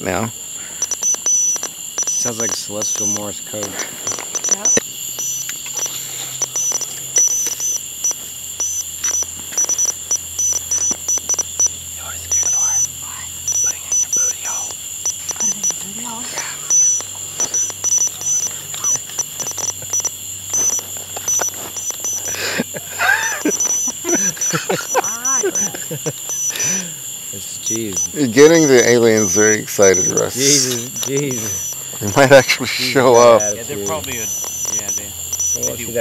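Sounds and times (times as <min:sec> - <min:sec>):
crackling clicks: 0:00.0 - 0:36.0
short high-pitched beeps: 0:00.0 - 0:36.0
steady high whine: 0:00.0 - 0:36.0.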